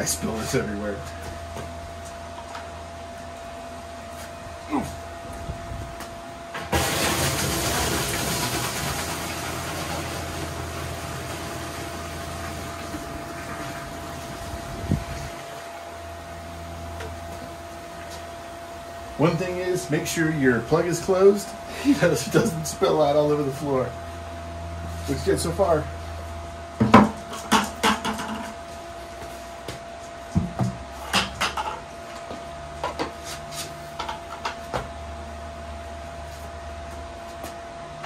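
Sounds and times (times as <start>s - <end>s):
liquid pouring into metal tank: 6.7s - 14.5s.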